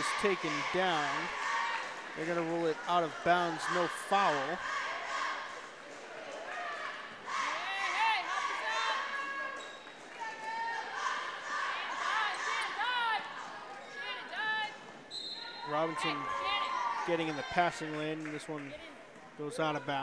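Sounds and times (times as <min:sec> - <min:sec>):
voices of spectators: 0:00.0 - 0:20.0
sneaker squeaks on court: 0:09.5 - 0:10.0.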